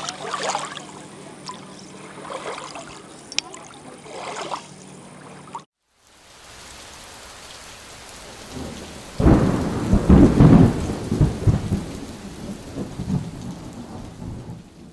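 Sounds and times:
steady rain hiss: 5.8s - 14.9s
rolling thunder: 8.2s - 14.9s.

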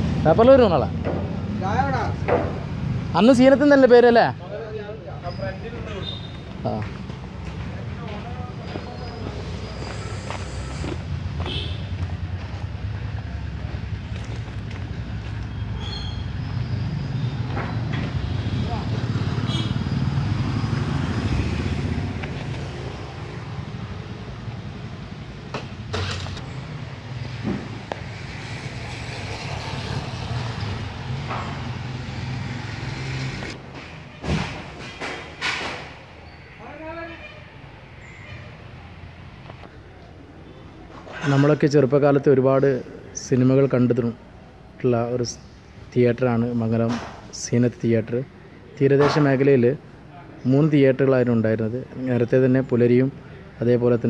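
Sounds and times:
sharp knocks: 2.2s - 2.7s.

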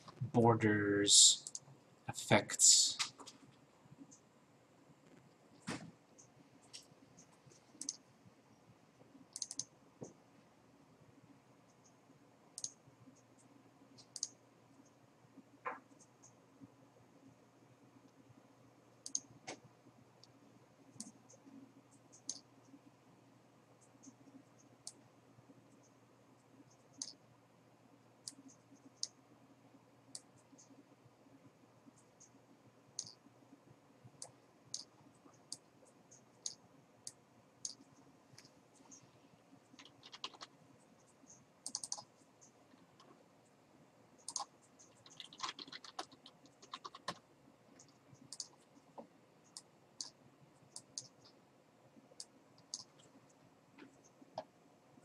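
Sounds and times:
computer mouse clicking: 1.4s - 1.7s, 6.2s - 8.0s, 9.3s - 10.2s, 12.6s - 15.0s, 19.0s - 19.6s, 20.2s - 22.8s, 23.8s - 25.0s, 26.7s - 27.2s, 28.2s - 29.2s, 30.1s - 30.8s, 33.0s - 33.3s, 34.1s - 43.2s, 44.2s - 51.4s, 52.2s - 53.1s.

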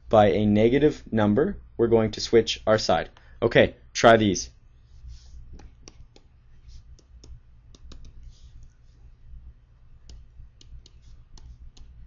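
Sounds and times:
faint low hum: 0.0s - 12.0s
stylus tapping on tablet screen: 5.5s - 8.7s, 10.0s - 12.0s.

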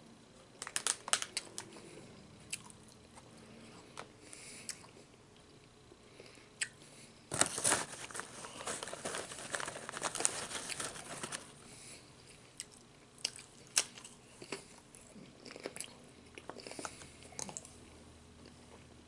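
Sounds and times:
chip bag crinkling: 0.6s - 1.8s, 7.3s - 11.6s
chewing crunchy chips: 0.6s - 3.3s, 12.2s - 17.8s.

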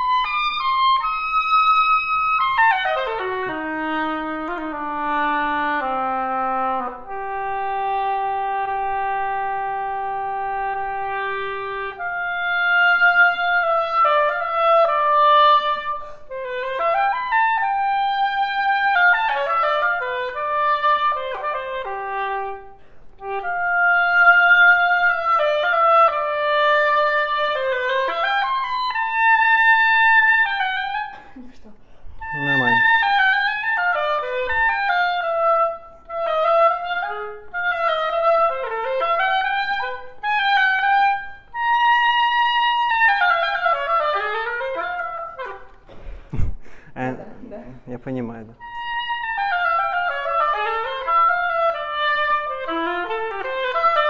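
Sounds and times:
oboe playing melody: 0.0s - 31.3s, 32.1s - 45.9s, 48.6s - 54.0s.

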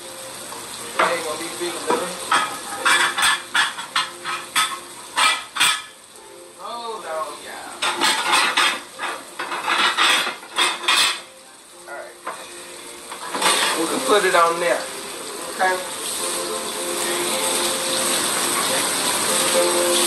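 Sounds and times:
fish sizzling in oil: 0.0s - 20.0s
dishes and utensils clinking: 1.0s - 6.0s, 7.8s - 11.4s, 12.2s - 14.3s.

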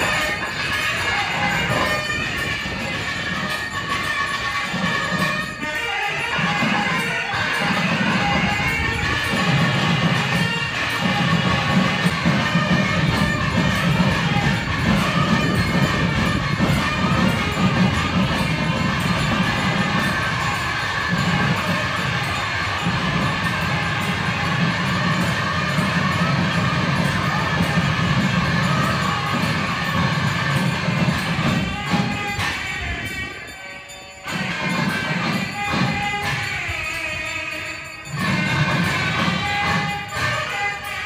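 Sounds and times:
crowd noise: 0.0s - 41.0s
traditional temple music: 0.0s - 41.0s.

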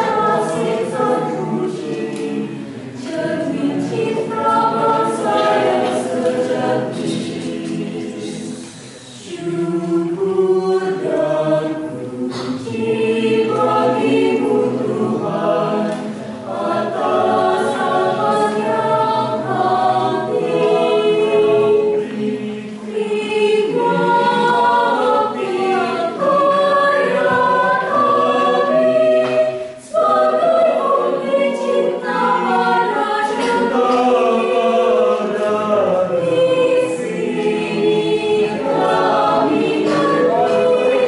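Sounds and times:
choir singing a hymn: 0.0s - 41.0s.

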